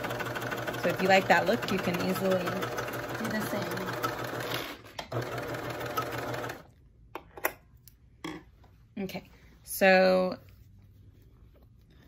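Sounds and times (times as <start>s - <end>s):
sewing machine running: 0.0s - 6.7s.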